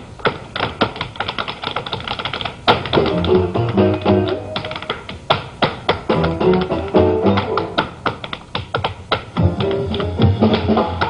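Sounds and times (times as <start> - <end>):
tap shoes on stage floor: 0.0 - 11.0
musical accompaniment: 3.0 - 5.0, 6.1 - 7.9, 9.4 - 11.0.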